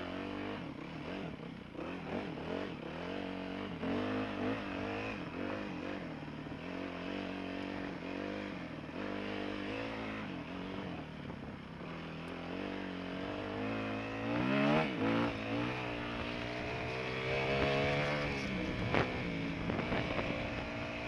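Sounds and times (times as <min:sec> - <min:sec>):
dirt bike engine revving: 0:00.0 - 0:11.0, 0:11.8 - 0:21.0.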